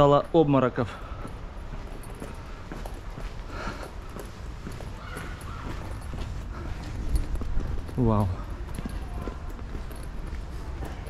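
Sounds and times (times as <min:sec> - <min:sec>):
brisk footsteps on hard ground: 0:00.0 - 0:11.0.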